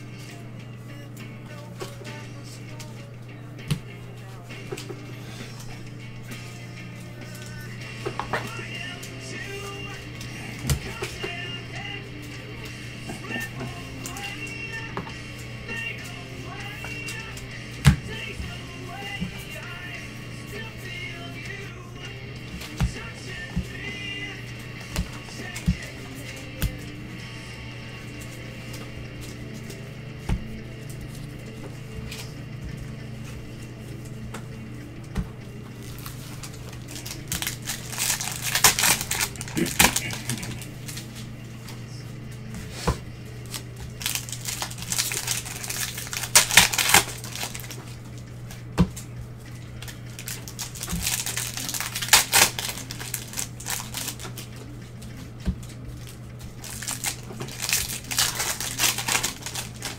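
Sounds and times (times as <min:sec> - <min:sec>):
background music: 0:00.0 - 0:59.9
low hum: 0:00.0 - 0:59.9
cards clicking: 0:35.2 - 0:41.8, 0:43.4 - 0:59.9
plastic wrapper crinkling and tearing: 0:35.8 - 0:41.1, 0:43.4 - 0:47.8, 0:49.8 - 0:54.4, 0:56.6 - 0:59.9.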